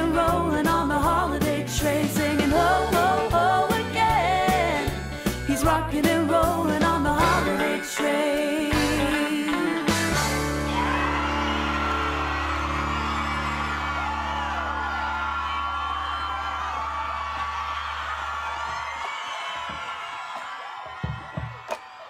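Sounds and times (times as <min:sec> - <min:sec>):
audience cheering and whooping: 0:10.3 - 0:22.0.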